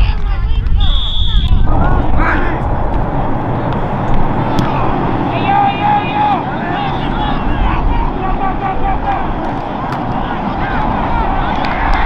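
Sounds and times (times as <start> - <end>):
steady low rumble: 0.0 - 12.0
voices shouting: 0.8 - 12.0.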